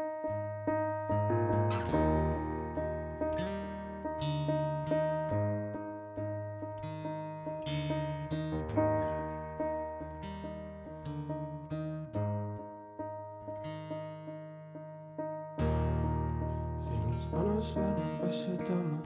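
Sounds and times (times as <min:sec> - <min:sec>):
acoustic guitar: 0:00.0 - 0:19.0
keyboard piano notes: 0:00.0 - 0:19.0.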